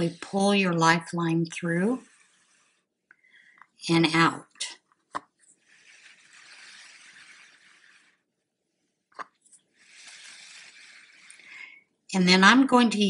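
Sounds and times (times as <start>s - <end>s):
yarn and cord rustling: 4.7s - 8.3s, 9.1s - 11.7s.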